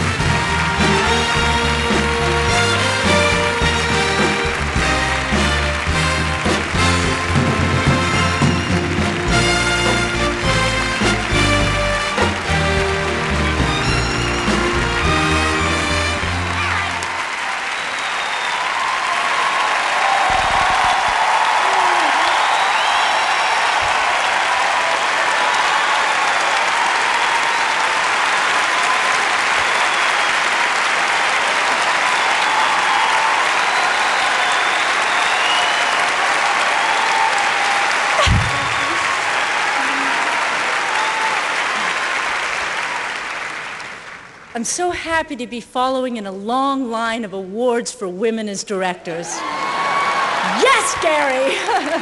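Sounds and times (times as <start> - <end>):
audience applauding: 0.0 - 44.6, 49.4 - 52.0.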